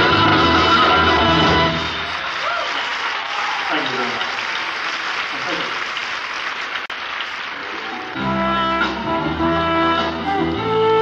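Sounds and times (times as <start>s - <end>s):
audience applauding and cheering: 0.0s - 9.5s.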